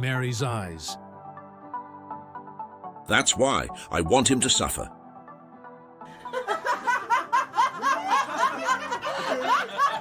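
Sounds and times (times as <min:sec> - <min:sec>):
people laughing: 0:06.1 - 0:10.0.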